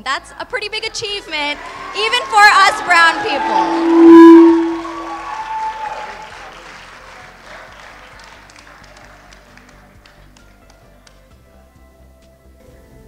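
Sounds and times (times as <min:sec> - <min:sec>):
audience applause: 0:01.6 - 0:03.5, 0:05.0 - 0:10.5
soft music: 0:08.1 - 0:13.0.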